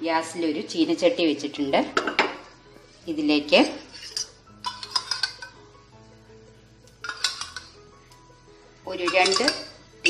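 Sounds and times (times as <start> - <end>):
metal pan clanking on burner grate: 4.0 - 5.6, 7.0 - 7.8, 8.9 - 9.8.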